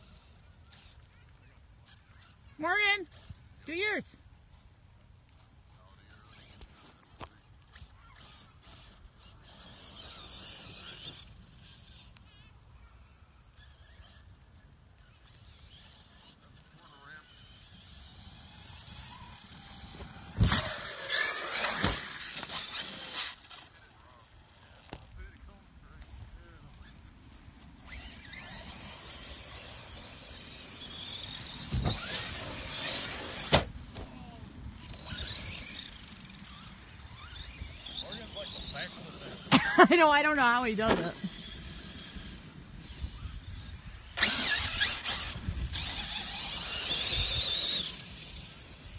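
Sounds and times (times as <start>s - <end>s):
toy car motors whining: 0.0s - 4.7s, 5.3s - 48.9s.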